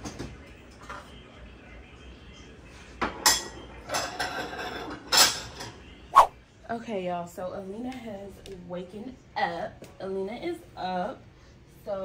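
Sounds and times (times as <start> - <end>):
ceramic plates clinking and clattering: 3.0 - 5.6.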